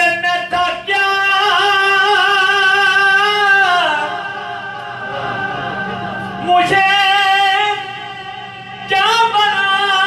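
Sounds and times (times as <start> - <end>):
man singing unaccompanied: 0.0 - 4.6, 6.4 - 10.0.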